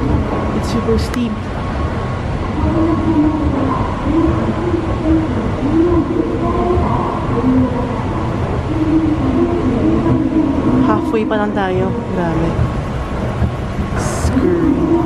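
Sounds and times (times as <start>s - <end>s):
faint wavering tones: 0.0s - 15.0s
subway machinery rumble: 0.0s - 15.0s.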